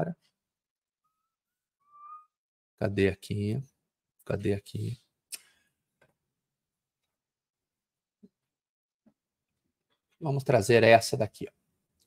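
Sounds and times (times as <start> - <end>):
person whistling softly: 1.1 - 2.4.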